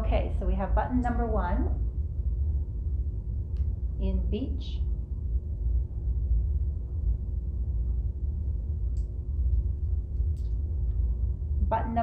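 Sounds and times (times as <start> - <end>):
faint constant hum: 0.0 - 12.0
low room rumble: 0.0 - 12.0.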